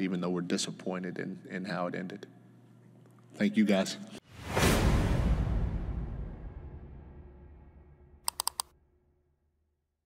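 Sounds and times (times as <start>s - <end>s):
quick sharp clicks: 8.3s - 8.7s.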